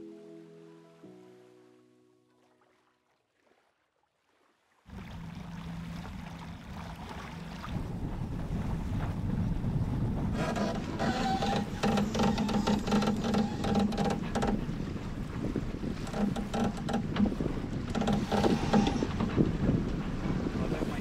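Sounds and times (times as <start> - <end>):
water rushing past hull: 1.0 - 21.0
wind buffeting microphone: 4.9 - 21.0
winch clicking: 10.4 - 14.6, 16.0 - 19.5.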